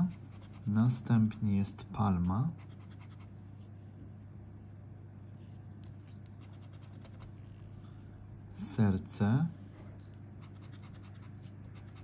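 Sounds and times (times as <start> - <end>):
low steady hum: 0.0 - 12.0
scratching lottery ticket: 10.4 - 12.0.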